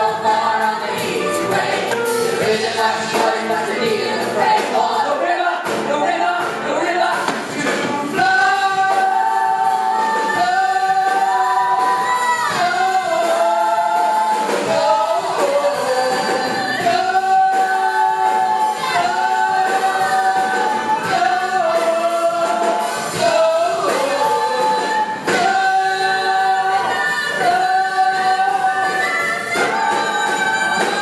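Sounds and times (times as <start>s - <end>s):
ensemble singing in harmony: 0.0s - 31.0s.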